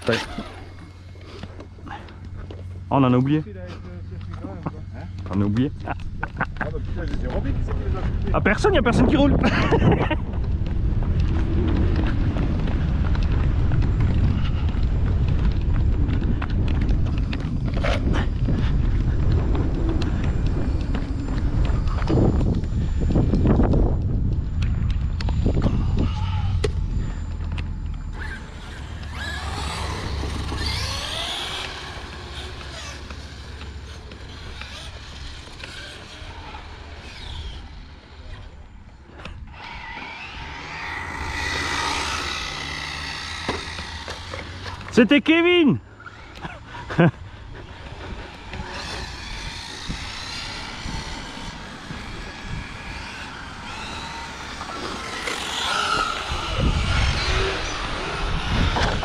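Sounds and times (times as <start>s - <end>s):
rc car motor whining: 0.0s - 59.0s
rc car wind and tyre rumble: 0.0s - 59.0s.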